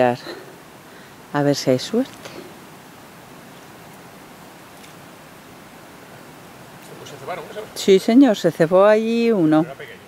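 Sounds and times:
river water hiss: 0:00.0 - 0:10.0.

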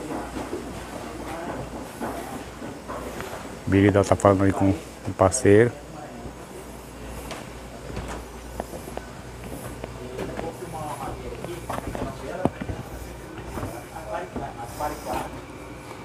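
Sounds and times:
footsteps on wooden planks: 0:00.0 - 0:03.6, 0:07.1 - 0:15.4
indistinct conversation: 0:00.0 - 0:15.9
steady low hum: 0:00.0 - 0:16.0.

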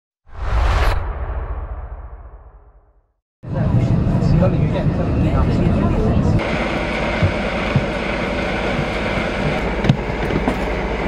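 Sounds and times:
whoosh: 0:00.2 - 0:03.2
deep rumble: 0:00.3 - 0:10.4.

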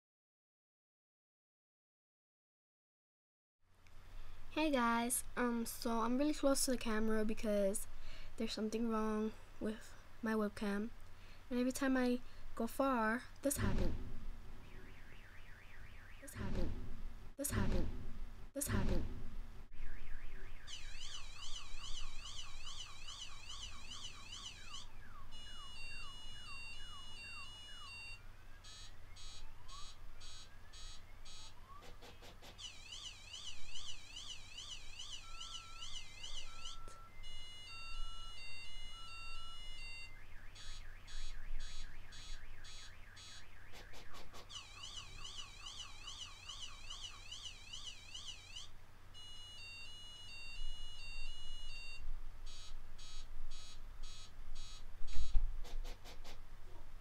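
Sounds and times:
car alarm siren: 0:14.6 - 0:16.4, 0:19.7 - 0:55.3.

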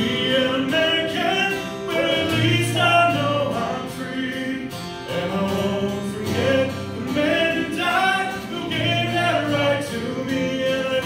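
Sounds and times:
acoustic guitar: 0:00.0 - 0:11.0
man singing into a microphone: 0:00.0 - 0:11.0.

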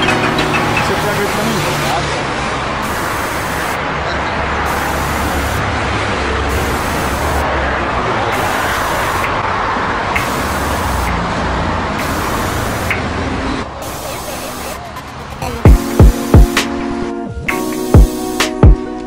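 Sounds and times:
road traffic rush: 0:00.0 - 0:19.0.

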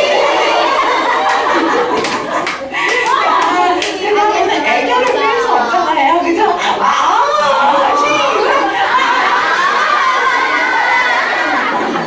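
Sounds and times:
women talking and chanting: 0:00.0 - 0:12.0
women clapping in rhythm: 0:00.8 - 0:05.3.

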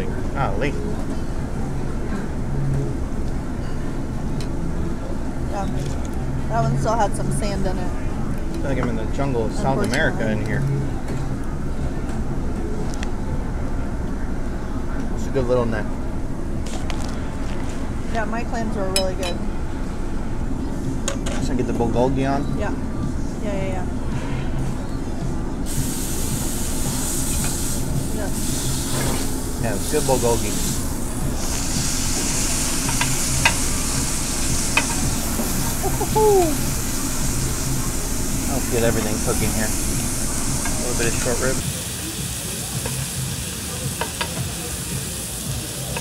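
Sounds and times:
ventilation hood rumble: 0:00.0 - 0:46.0
meat sizzling on a grill: 0:25.7 - 0:46.0.

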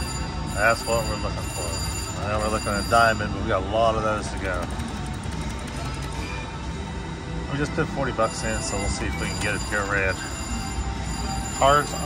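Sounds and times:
slot machine electronic music: 0:00.0 - 0:12.0.

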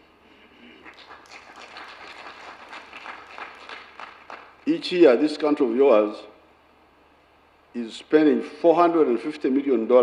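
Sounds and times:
scattered applause: 0:00.6 - 0:04.7.

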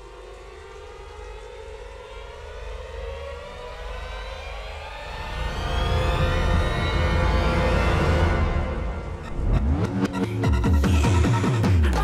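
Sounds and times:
suspense film score drone: 0:00.0 - 0:12.0.

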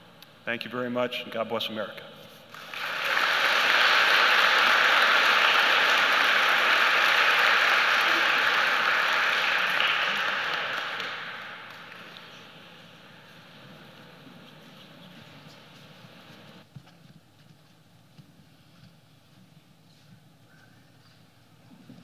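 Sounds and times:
audience applauding: 0:02.5 - 0:14.1.

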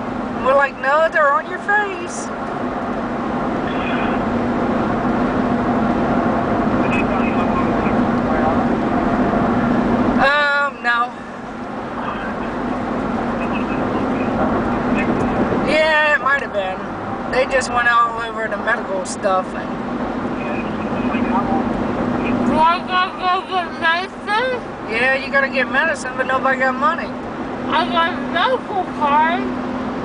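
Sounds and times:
car road and engine noise: 0:00.0 - 0:30.0.

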